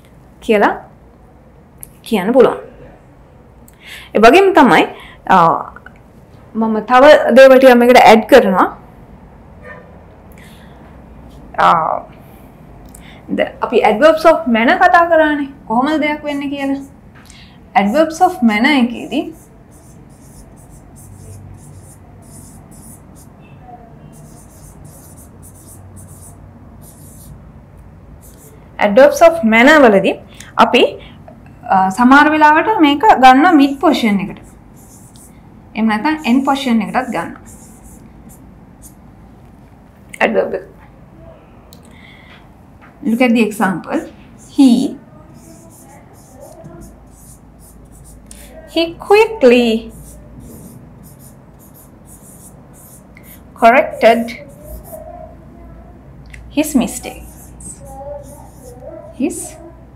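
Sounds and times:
marker pen scratching on whiteboard: 16.1 - 17.0, 17.8 - 23.4, 24.0 - 27.4, 28.2 - 29.4, 33.4 - 39.0, 44.0 - 48.9, 49.7 - 55.3, 56.6 - 59.6.

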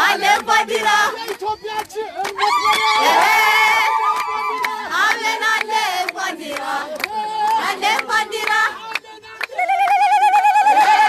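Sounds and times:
handclap: 1.2 - 2.9, 4.1 - 10.7
woman ululating: 9.6 - 11.0.

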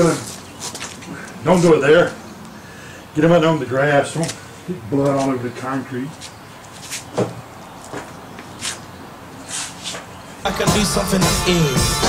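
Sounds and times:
short knocks and scuffs: 5.0 - 8.9, 9.5 - 10.1.

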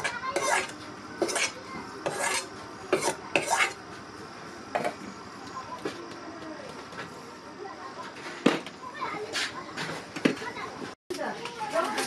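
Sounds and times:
metal spatula scraping steel bowl: 0.0 - 3.8.

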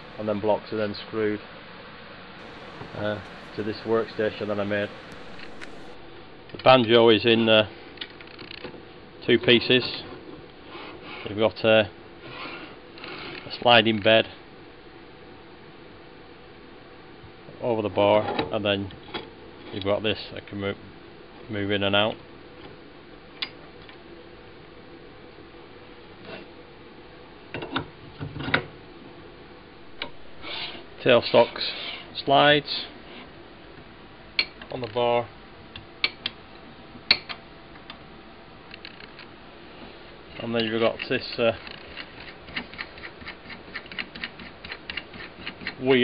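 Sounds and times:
lathe handwheel clicking: 2.4 - 6.0.

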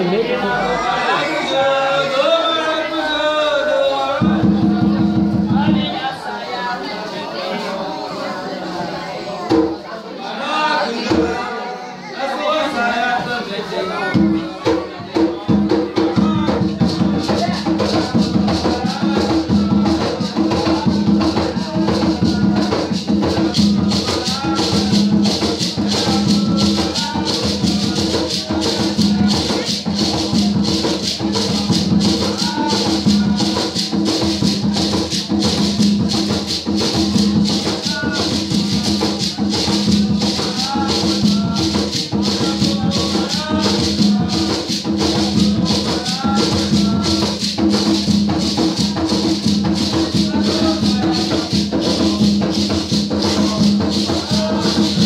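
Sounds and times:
voices singing: 0.0 - 55.0
drums beating: 4.2 - 6.0, 14.1 - 55.0
rattles shaken: 16.8 - 55.0.

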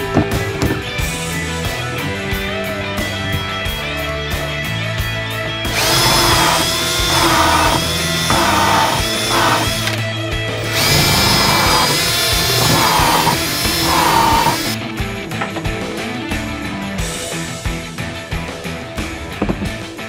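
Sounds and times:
background music: 0.0 - 20.0
cordless drill driving screws: 5.7 - 14.8.

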